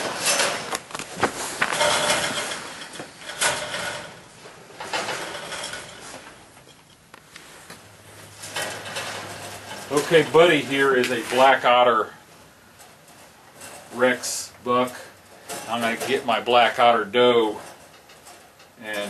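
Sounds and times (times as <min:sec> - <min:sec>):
wire cage rattling: 0:00.0 - 0:06.9, 0:08.0 - 0:19.0
rustling: 0:00.0 - 0:19.0.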